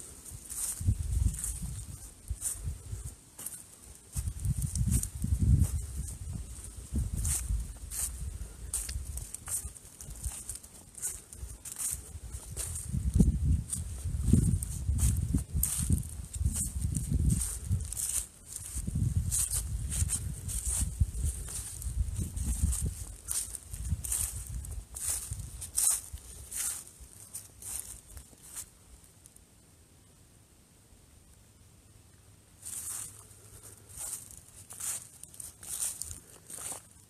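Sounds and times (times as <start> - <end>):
footsteps crunching dry leaves: 0.0 - 28.7, 32.6 - 37.0.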